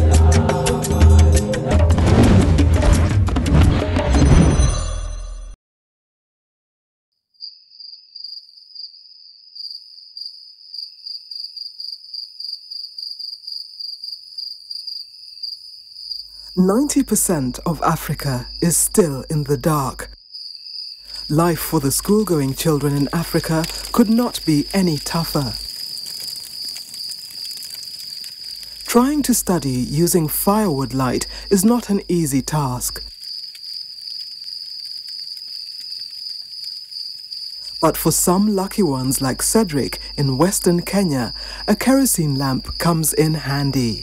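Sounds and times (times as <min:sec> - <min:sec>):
theme music: 0:00.0 - 0:05.5
crickets chirping: 0:07.4 - 0:44.0
faint crackling: 0:21.1 - 0:30.6, 0:32.9 - 0:37.8.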